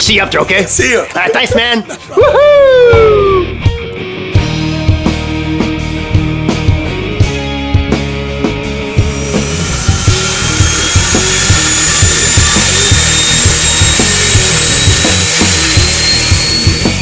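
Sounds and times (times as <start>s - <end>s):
rock music with steady beat: 2.8s - 17.0s
turboprop engine whine: 8.8s - 17.0s.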